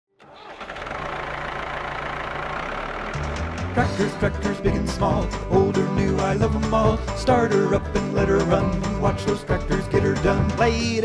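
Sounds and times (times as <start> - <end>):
tractor engine running: 0.2 - 11.0.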